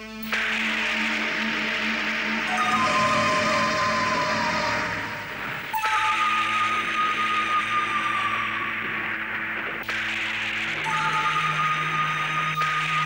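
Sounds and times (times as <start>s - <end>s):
dramatic sustained music: 0.0s - 13.0s.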